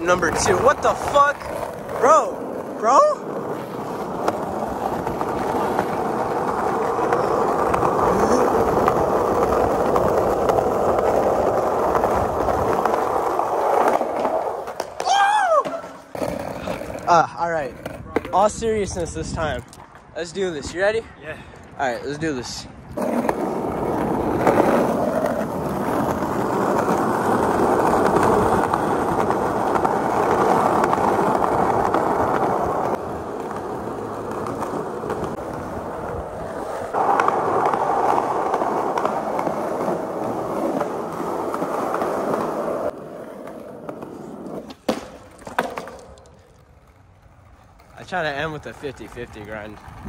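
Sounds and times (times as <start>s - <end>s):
skateboard striking pavement: 0.0s - 20.0s, 22.9s - 50.0s
skateboard wheels rolling on concrete: 0.0s - 50.0s.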